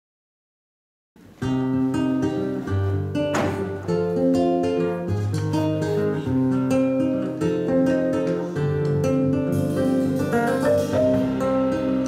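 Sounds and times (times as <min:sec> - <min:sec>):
acoustic guitar picking: 0:01.2 - 0:12.0
electric bass line: 0:09.1 - 0:12.0.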